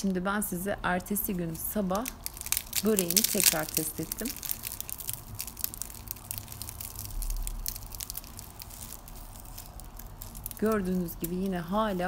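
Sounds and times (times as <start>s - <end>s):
crisp pastry crackling: 0.0s - 12.0s.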